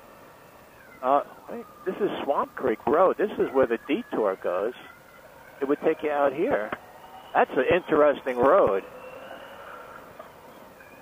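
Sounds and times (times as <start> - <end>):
faint high whine: 0.0 - 11.0
motorcycle ride noise through intercom: 0.7 - 11.0.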